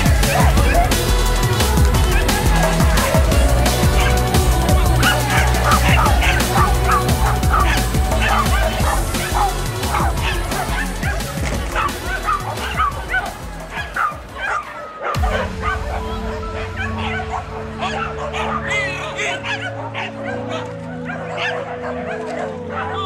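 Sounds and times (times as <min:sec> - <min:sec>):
dog barking excitedly: 0:00.0 - 0:15.8, 0:16.6 - 0:23.0
music with heavy beat: 0:00.0 - 0:18.3.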